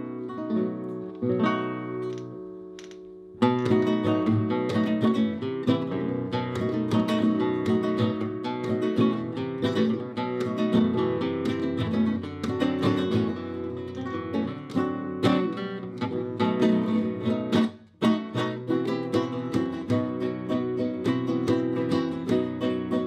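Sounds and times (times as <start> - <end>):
flamenco guitar: 0.0 - 23.0.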